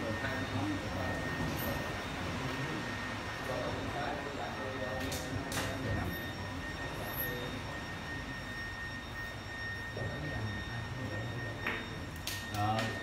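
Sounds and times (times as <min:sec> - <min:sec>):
constant high-pitched tone: 0:00.0 - 0:13.0
steady hum: 0:00.0 - 0:13.0.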